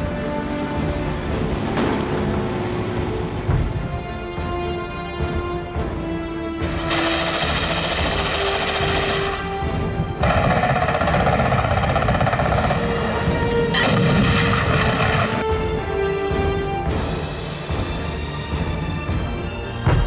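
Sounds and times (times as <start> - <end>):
dramatic music score: 0.0 - 20.0
gunfire bursts: 6.9 - 15.8.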